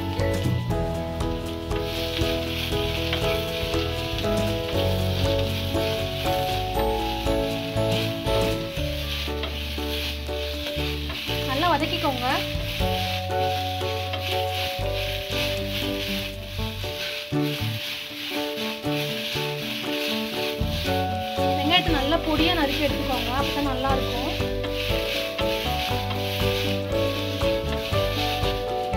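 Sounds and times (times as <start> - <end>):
instrumental background music: 0.0 - 28.9
onions sizzling in hot oil: 0.0 - 28.9
wooden spatula stirring: 0.0 - 28.9.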